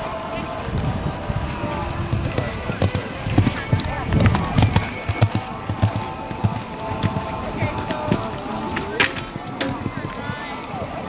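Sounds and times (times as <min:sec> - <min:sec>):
horse hoofbeats on sand: 0:00.0 - 0:11.0.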